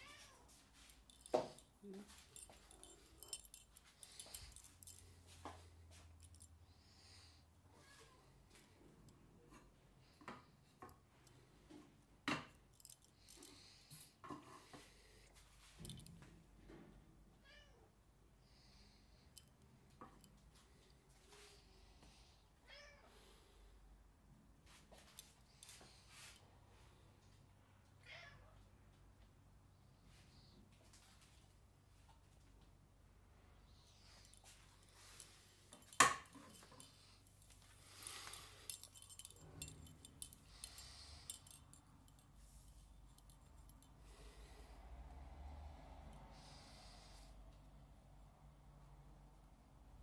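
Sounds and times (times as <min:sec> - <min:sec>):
cat meowing faintly: 0:00.0 - 0:00.6, 0:07.7 - 0:08.4, 0:17.4 - 0:17.9, 0:22.6 - 0:23.3, 0:28.0 - 0:28.7
cats meowing: 0:00.0 - 0:00.6
light clicks and rustles: 0:00.3 - 0:06.6, 0:08.5 - 0:16.9.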